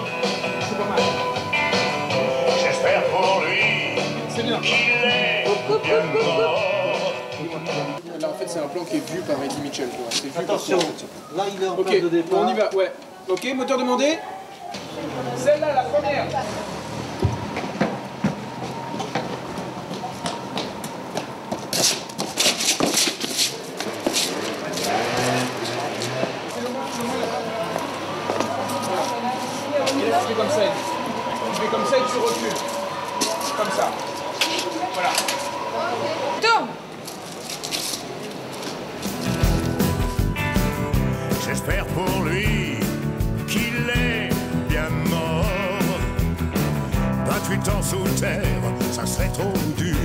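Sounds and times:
rock and roll band playing: 0:00.0 - 0:08.0, 0:39.1 - 0:50.0
indistinct voices: 0:00.0 - 0:11.4, 0:23.4 - 0:37.4, 0:38.0 - 0:50.0.

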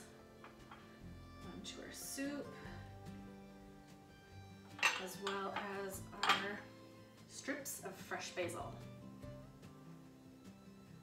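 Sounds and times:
quiet music with held notes: 0:00.0 - 0:11.0.

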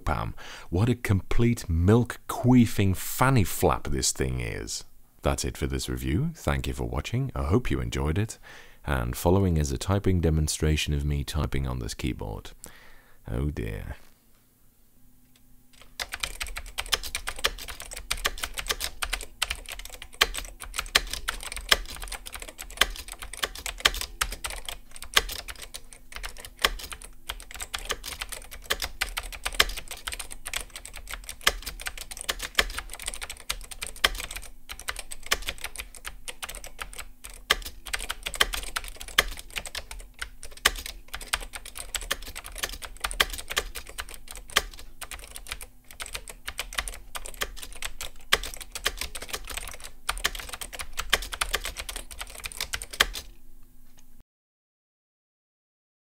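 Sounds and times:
keyboard typing clacks: 0:15.8 - 0:53.3.

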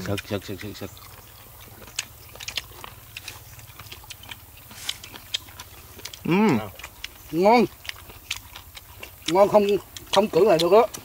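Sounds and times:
person chewing crunchy food: 0:00.0 - 0:11.0.

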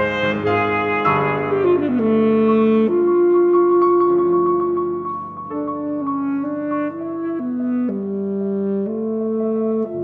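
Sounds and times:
saxophone playing slow melody: 0:00.0 - 0:10.0.

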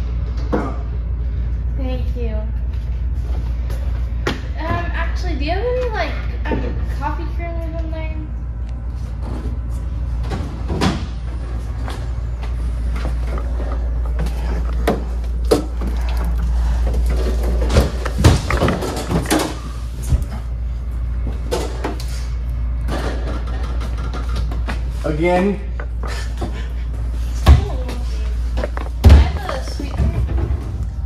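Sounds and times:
steady low hum: 0:00.0 - 0:31.0
heavy breathing: 0:12.5 - 0:17.7, 0:25.9 - 0:27.5
bottles clattering: 0:13.2 - 0:19.7, 0:28.4 - 0:30.6.

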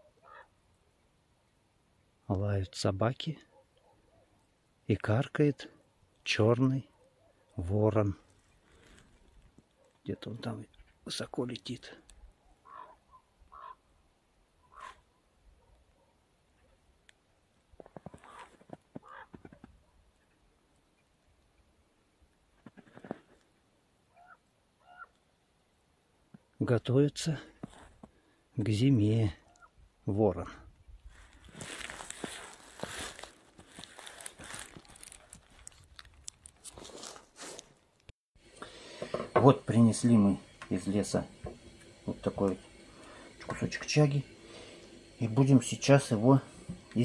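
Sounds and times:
raven croaks: 0:00.2 - 0:00.5, 0:12.6 - 0:13.9, 0:14.6 - 0:15.1, 0:18.1 - 0:19.7.

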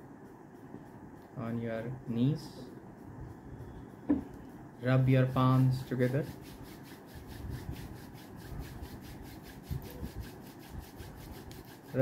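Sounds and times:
hands rubbing together: 0:04.3 - 0:12.0.

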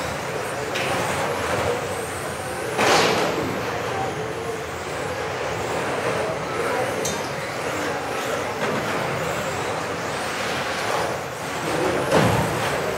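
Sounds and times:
rc car motors and tyres: 0:03.8 - 0:12.9.

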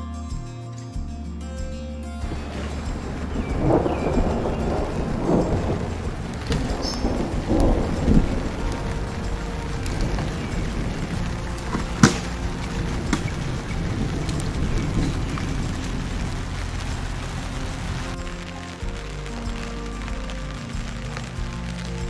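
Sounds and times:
rain falling: 0:02.2 - 0:22.0
rolling thunder: 0:02.2 - 0:22.0.

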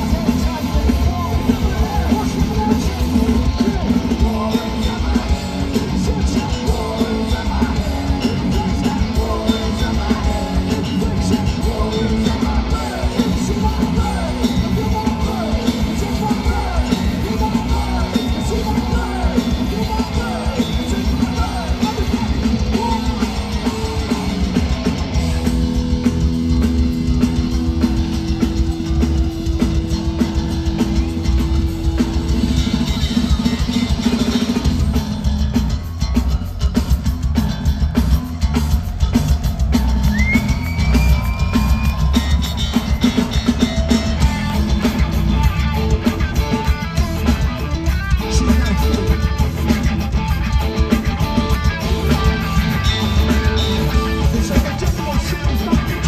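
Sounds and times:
bass guitar: 0:00.0 - 0:56.0
distorted electric guitars: 0:00.0 - 0:56.0
drum kit: 0:00.0 - 0:56.0.

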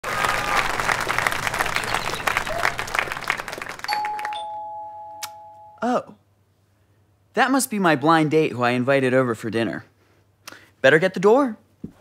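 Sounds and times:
audience applause: 0:00.0 - 0:04.4
two-note doorbell chime: 0:03.9 - 0:05.8.

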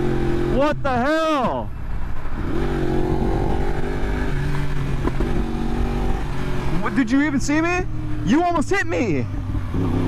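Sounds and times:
wind rush: 0:01.6 - 0:06.9
motorcycle engine running: 0:01.7 - 0:10.0.

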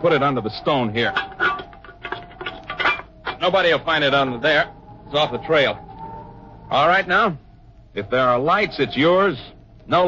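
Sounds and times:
metal tin clinking and knocking: 0:01.0 - 0:03.4.

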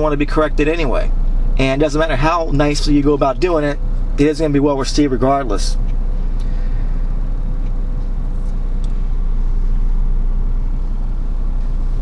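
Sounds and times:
low rumble: 0:00.0 - 0:12.0
thin steady hum: 0:00.0 - 0:12.0.

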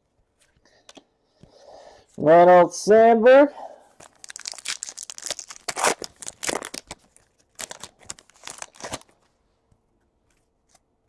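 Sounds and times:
wrapper tearing and crinkling: 0:04.0 - 0:09.3.

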